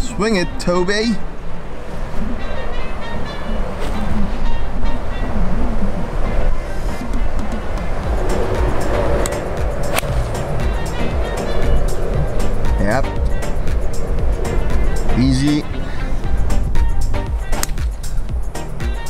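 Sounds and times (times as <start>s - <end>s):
wind rumble on microphone: 0.0s - 19.0s
background music: 6.2s - 19.0s
golf club striking ball: 8.9s - 11.0s.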